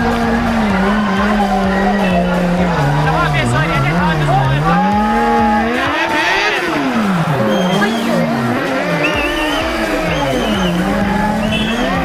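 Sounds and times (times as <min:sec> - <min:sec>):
crowd voices: 0:00.0 - 0:12.0
motorcycle engines revving: 0:00.0 - 0:12.0.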